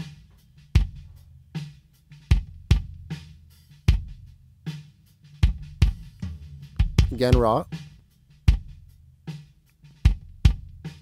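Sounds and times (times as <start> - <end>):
kick drum thumps: 0.0 - 1.2.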